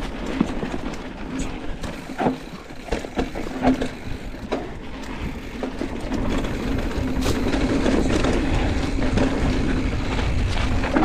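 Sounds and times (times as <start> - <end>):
bike clicking and rattling: 0.0 - 11.0
bike tyres rumbling on dirt: 0.0 - 11.0
wind buffeting microphone: 0.0 - 11.0.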